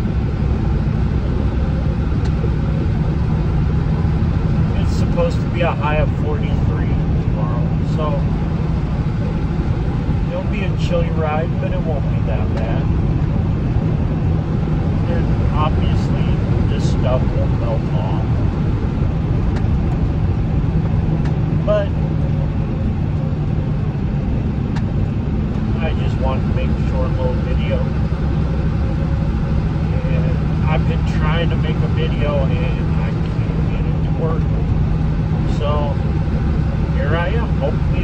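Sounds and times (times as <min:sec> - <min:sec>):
vehicle engine and tyres rumbling: 0:00.0 - 0:38.0.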